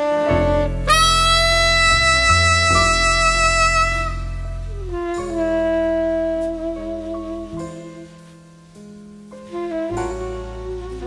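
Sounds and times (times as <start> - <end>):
sustained piano and bass: 0.0 - 11.0
tenor saxophone jazz ballad: 0.0 - 11.0.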